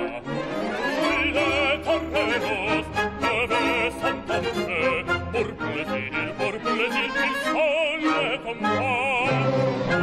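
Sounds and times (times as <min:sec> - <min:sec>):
operatic singing: 0:00.0 - 0:10.0
symphony orchestra: 0:00.0 - 0:10.0.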